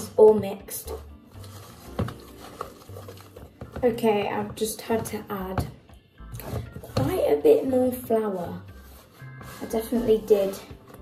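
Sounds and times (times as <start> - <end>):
person speaking: 9.5 - 10.8.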